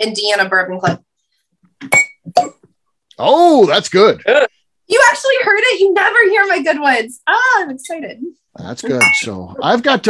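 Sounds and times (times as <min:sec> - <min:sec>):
cork popping from glass bottle: 0:01.8 - 0:02.6
light glass clink: 0:01.9 - 0:02.6, 0:08.9 - 0:09.4.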